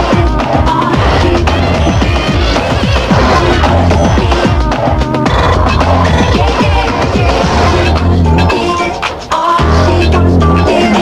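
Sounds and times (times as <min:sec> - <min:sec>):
dance music with strong bass: 0:00.0 - 0:11.0.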